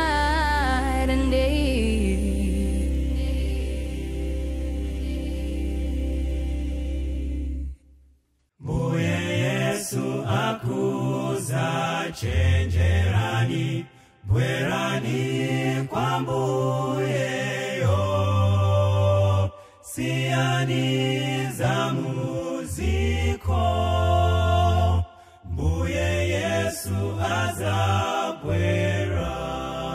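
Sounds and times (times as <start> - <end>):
deep bass line: 0.0 - 7.8
male vocal group singing in harmony: 8.6 - 29.9.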